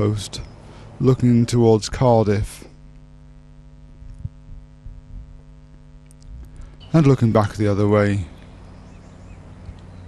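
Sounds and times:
electrical mains hum: 0.0s - 10.0s
faint ticks: 6.0s - 6.8s.

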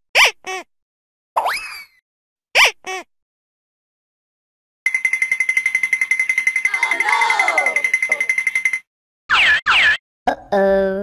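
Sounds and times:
ringing alarm bell buzz: 4.9s - 8.9s.

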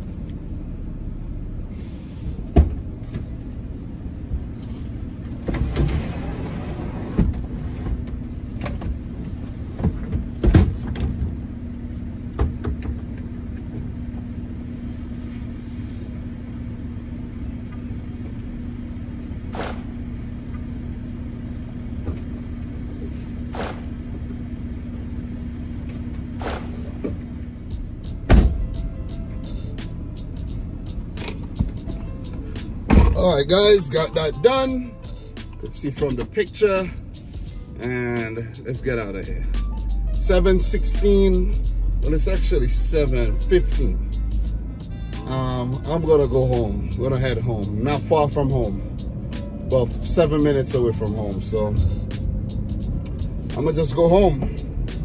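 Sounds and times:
low engine hum: 0.0s - 55.0s
car door opening thump: 28.3s - 28.6s, 32.9s - 33.3s.

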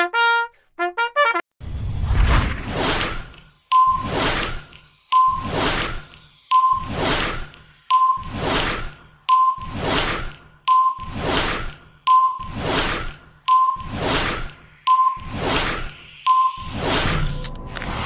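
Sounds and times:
whoosh sound effect: 1.6s - 4.8s, 5.4s - 6.1s, 6.8s - 7.6s, 8.2s - 9.0s, 9.6s - 10.4s, 11.1s - 11.8s, 12.4s - 13.2s, 13.8s - 18.0s.

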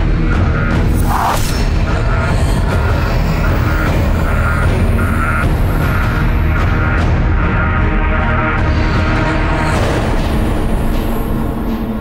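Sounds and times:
tense dramatic music: 0.0s - 12.0s.

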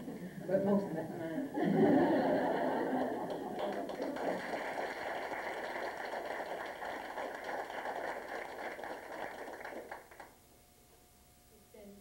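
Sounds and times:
small crowd applauding: 2.8s - 10.4s.

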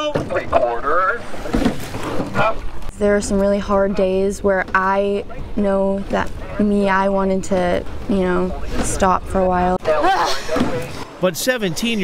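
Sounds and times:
water splashing from oars: 1.2s - 2.9s.

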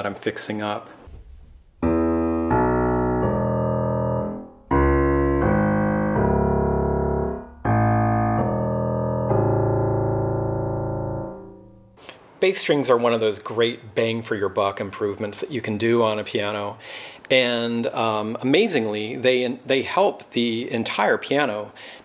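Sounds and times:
piano sustained chords: 1.8s - 12.0s.

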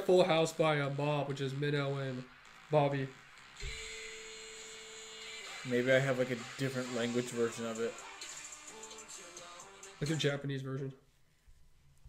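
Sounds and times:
steady single-pitched hum: 0.0s - 8.7s.

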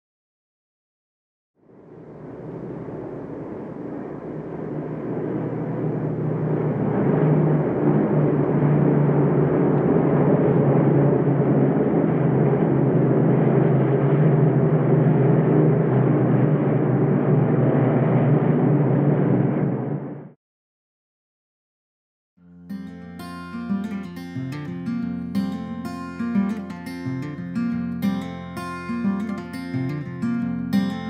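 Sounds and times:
propeller aircraft drone: 1.6s - 20.4s.

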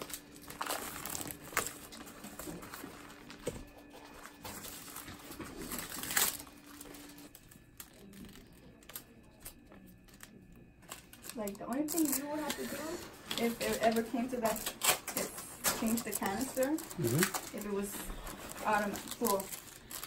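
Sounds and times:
plastic drape crinkling: 0.0s - 20.0s.

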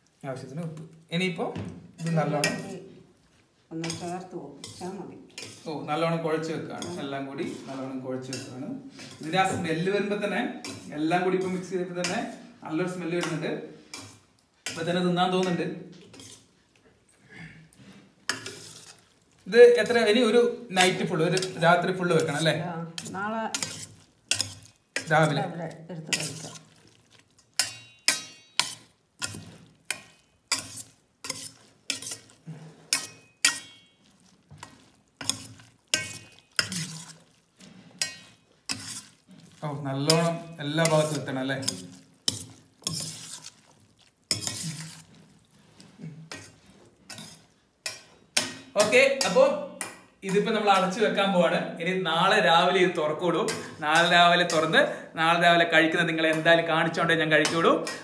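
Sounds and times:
spoon stirring wet rice: 2.0s - 16.9s, 17.7s - 51.4s, 52.1s - 58.0s
spoon scraping metal bowl: 3.8s - 16.6s, 18.3s - 19.2s, 20.7s - 25.5s, 26.1s - 51.1s, 53.5s - 54.8s, 56.1s - 58.0s
person speaking: 39.6s - 41.9s.

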